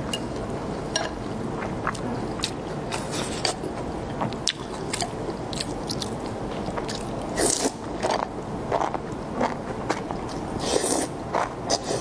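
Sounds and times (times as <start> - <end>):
person chewing food: 1.2 - 12.0.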